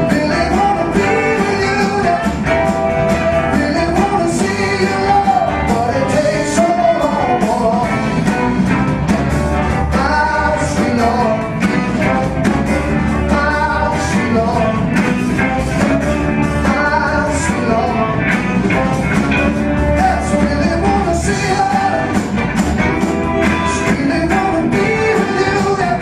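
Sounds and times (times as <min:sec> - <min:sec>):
live rock band playing: 0:00.0 - 0:26.0.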